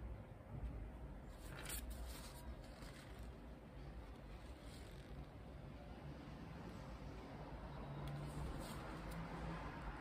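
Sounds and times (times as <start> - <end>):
paper towel rustle: 1.4 - 5.3.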